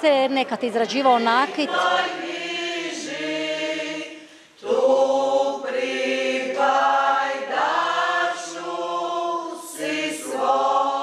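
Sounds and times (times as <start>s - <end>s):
choir singing held notes: 0.5s - 11.0s.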